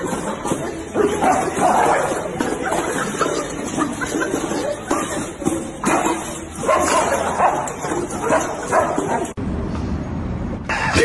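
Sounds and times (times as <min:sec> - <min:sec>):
dogs yipping and whimpering: 0:00.0 - 0:09.4
people's voices: 0:00.0 - 0:09.4.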